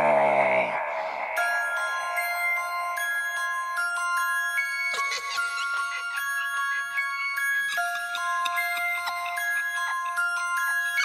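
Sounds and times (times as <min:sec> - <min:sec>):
deep sinister laugh: 0:00.0 - 0:02.2, 0:04.8 - 0:06.7, 0:07.4 - 0:11.0
chiming bell-like melody: 0:00.6 - 0:11.0.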